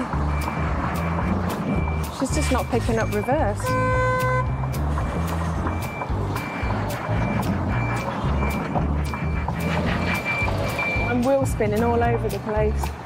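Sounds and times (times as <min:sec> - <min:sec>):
background music with bass line: 0:00.0 - 0:13.0
truck reversing alarm beeping: 0:00.0 - 0:13.0.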